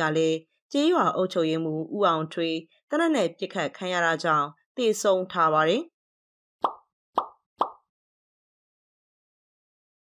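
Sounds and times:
short pop sound effects: 6.6 - 7.8.

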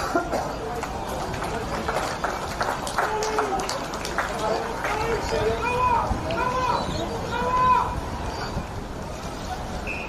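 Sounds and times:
players shouting and calling: 0.0 - 10.0
wind rumble on microphone: 4.3 - 10.0.

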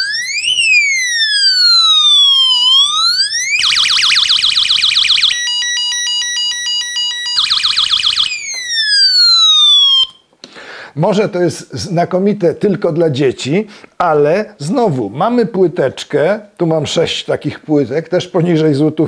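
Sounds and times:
electronic siren wailing: 0.0 - 10.2.

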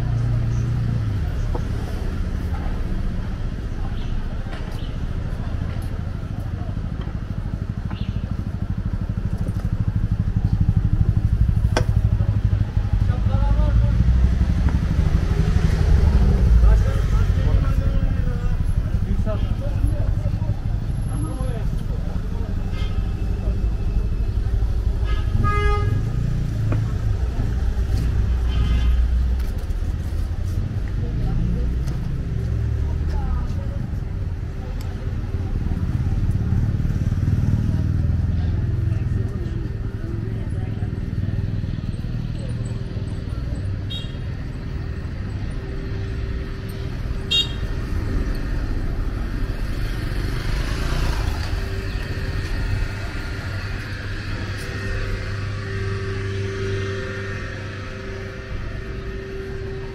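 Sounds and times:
motor traffic rumble: 0.0 - 59.9
passers-by talking: 0.0 - 59.9.

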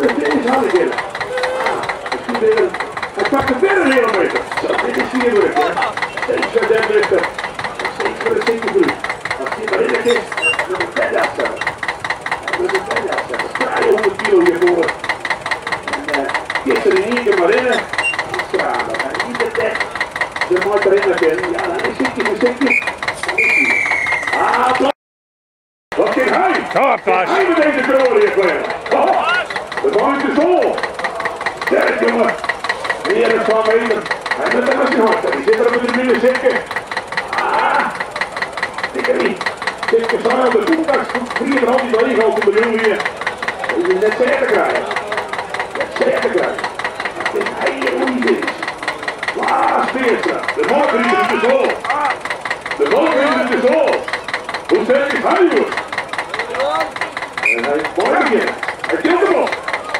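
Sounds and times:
people talking: 0.0 - 11.7, 12.3 - 15.0, 15.6 - 25.0, 26.0 - 59.9
tractor engine idling with knocking: 0.0 - 24.9, 25.9 - 59.9.

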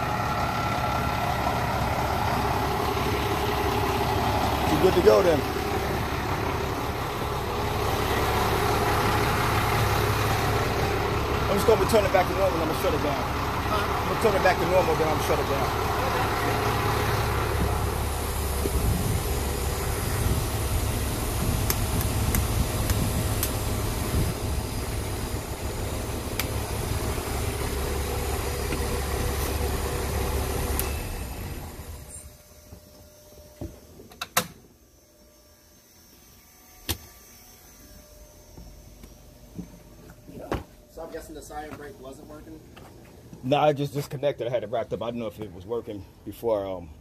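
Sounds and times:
fire truck engine rumbling: 0.0 - 32.9.

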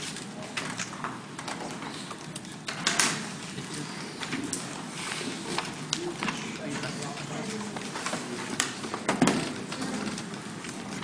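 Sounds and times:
murmur of students talking: 0.0 - 11.0
scattered clicks and knocks: 0.5 - 3.3, 7.7 - 11.0.

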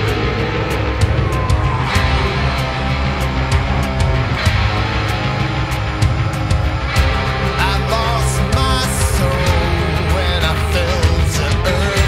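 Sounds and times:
distorted electric guitar: 0.0 - 12.0
steady drum beat: 0.0 - 12.0.

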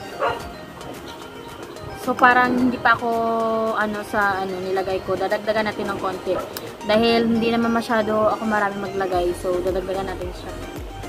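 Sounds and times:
faint background music: 0.0 - 11.0
dog barking: 0.1 - 0.5, 6.3 - 6.6.

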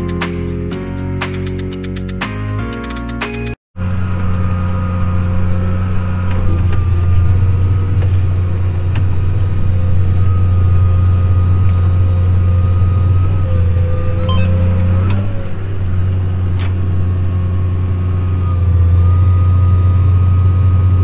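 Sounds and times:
tractor engine drone: 3.2 - 21.0.

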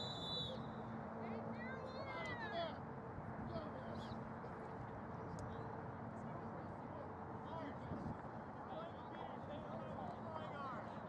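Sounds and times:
distant high-pitched human call: 0.0 - 0.8
outdoor field noise: 0.0 - 11.0.

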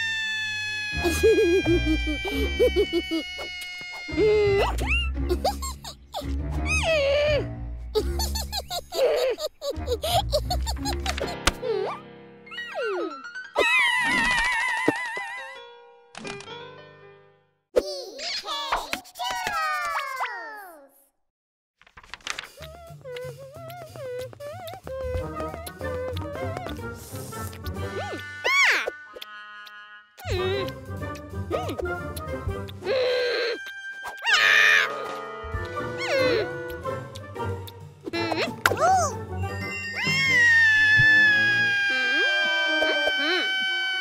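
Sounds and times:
cartoon girl wailing: 0.0 - 7.5, 12.8 - 15.2, 28.0 - 29.0, 32.8 - 35.1, 36.0 - 36.5, 38.2 - 44.0.

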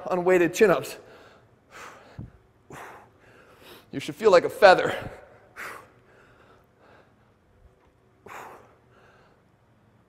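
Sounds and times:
faint breathing: 1.0 - 3.9, 4.9 - 7.5, 8.2 - 10.0.

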